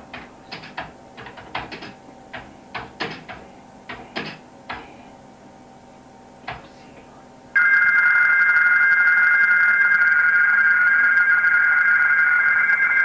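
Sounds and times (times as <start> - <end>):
data signal shifting tones: 7.6 - 13.0.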